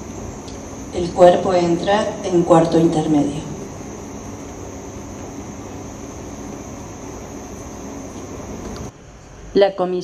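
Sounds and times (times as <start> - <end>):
steady hiss: 0.0 - 9.8
faint high-pitched whine: 0.0 - 10.0.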